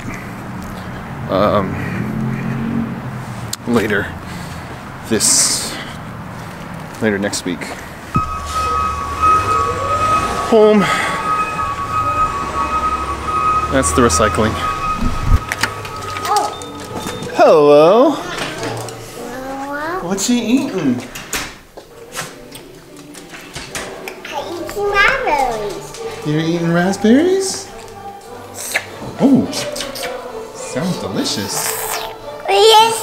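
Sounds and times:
truck engine rumble: 0:00.0 - 0:17.4
high-pitched whine: 0:08.2 - 0:17.4.

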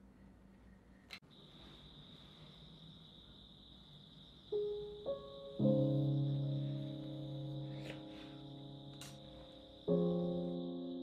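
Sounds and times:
piano music: 0:04.5 - 0:11.0.

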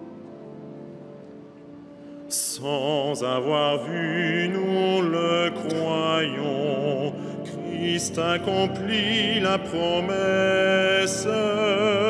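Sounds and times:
cantors singing chant: 0:02.3 - 0:12.0.

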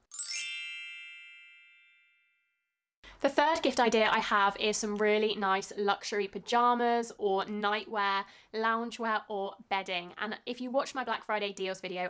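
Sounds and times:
bright bell-like chime: 0:00.0 - 0:02.7.

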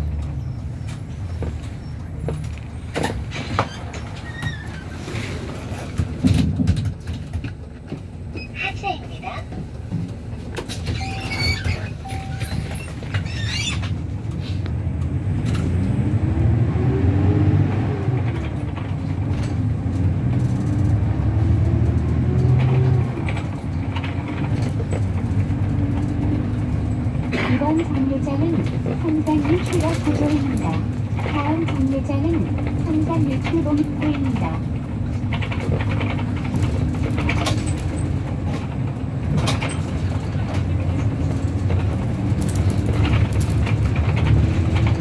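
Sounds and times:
squeaks and rattles: 0:00.0 - 0:14.5, 0:22.2 - 0:45.0
bus engine rumble: 0:00.0 - 0:45.0.

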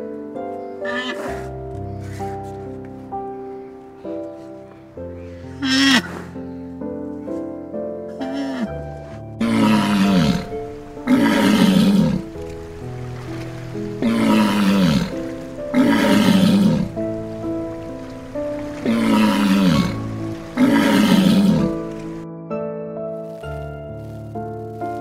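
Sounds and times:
gentle instrumental music: 0:00.0 - 0:25.0
large animal hoarse roaring call: 0:09.4 - 0:22.2.

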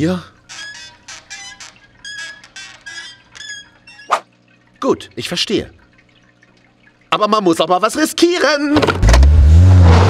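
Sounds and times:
high-pitched squeaks: 0:00.5 - 0:04.2.

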